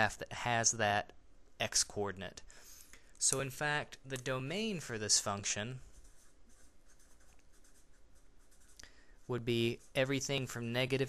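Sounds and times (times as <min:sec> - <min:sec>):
marker scratching on paper: 0:04.9 - 0:11.0.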